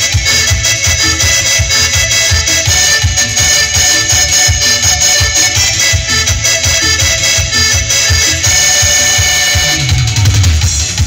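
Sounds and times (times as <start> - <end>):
deep bass: 0.0 - 11.0
steady drum beat: 0.0 - 11.0.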